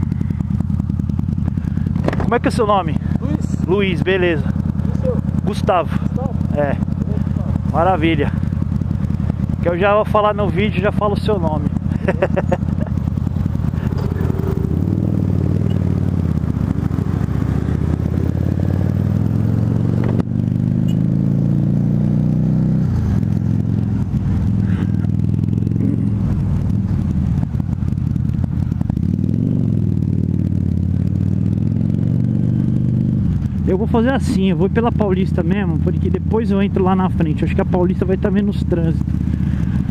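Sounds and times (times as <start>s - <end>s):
motorcycle engine accelerating: 0.0s - 39.9s.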